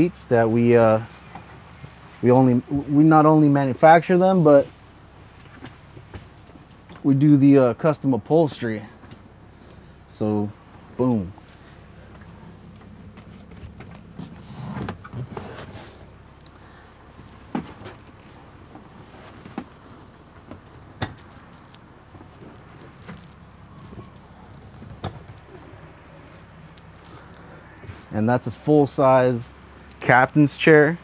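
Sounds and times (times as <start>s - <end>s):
steady low hum: 0.0s - 31.0s
rustling: 0.4s - 3.4s, 8.9s - 28.7s
chair swivel clicks and knocks: 20.5s - 21.8s.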